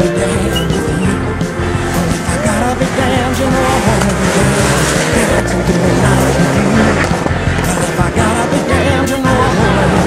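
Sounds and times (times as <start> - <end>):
rally car engine: 0.0 - 10.0
rock music: 0.0 - 10.0
tyres squealing: 0.3 - 10.0.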